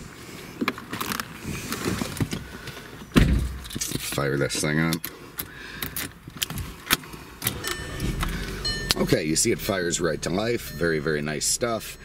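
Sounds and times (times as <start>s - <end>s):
car engine starting and idling: 5.8s - 12.0s
keys jangling in ignition: 7.4s - 9.2s
brief high tone: 7.6s - 9.2s, 10.0s - 12.0s.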